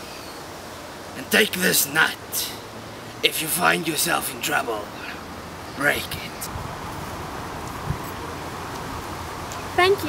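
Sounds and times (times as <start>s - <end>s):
low hiss and rumble: 0.0s - 10.0s.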